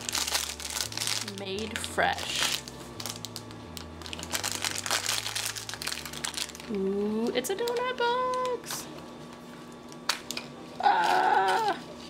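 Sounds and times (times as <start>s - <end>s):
plastic packet crinkling: 0.0s - 6.9s, 7.5s - 8.7s, 9.9s - 12.0s.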